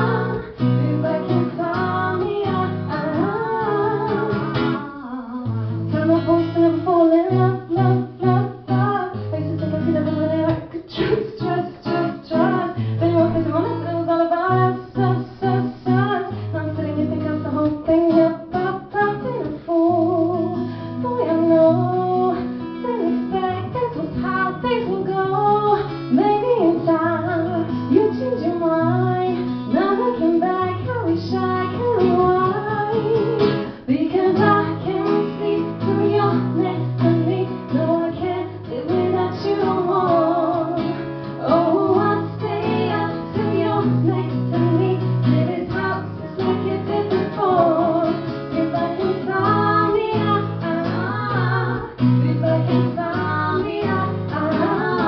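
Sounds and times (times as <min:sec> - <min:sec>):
acoustic guitar: 0:00.0 - 0:55.0
woman singing pop song: 0:00.0 - 0:55.0.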